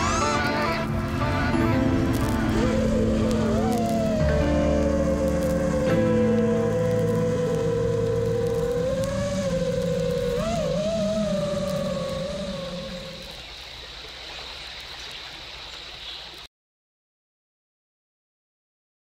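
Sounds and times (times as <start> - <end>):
drone motors whining: 0.0 - 13.4
quiet hiss: 0.0 - 16.5.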